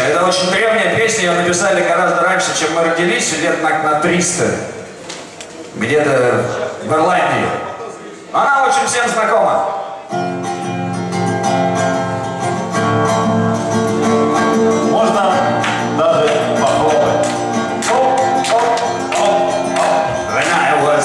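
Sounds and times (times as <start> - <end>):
acoustic guitar chords: 9.7 - 21.0.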